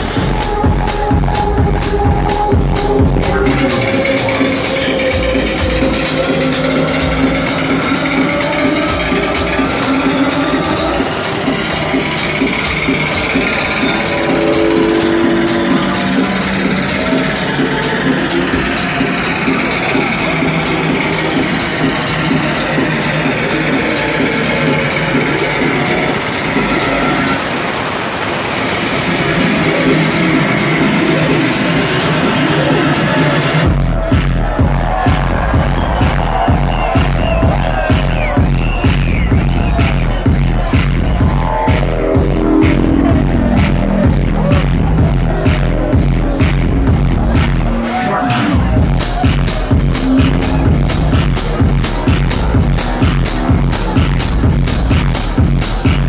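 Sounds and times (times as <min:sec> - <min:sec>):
electronic dance music: 0:00.0 - 0:56.0.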